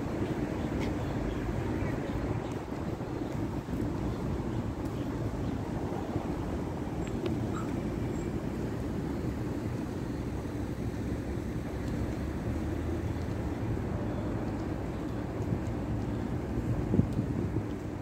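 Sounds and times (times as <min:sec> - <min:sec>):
city traffic rumble: 0:00.0 - 0:18.0.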